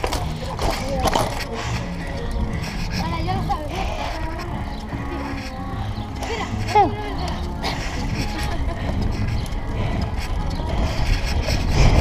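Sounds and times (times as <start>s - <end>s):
bike tyres rolling on asphalt: 0.0s - 12.0s
voices talking: 0.0s - 12.0s
wind rumble on camera: 0.0s - 12.0s.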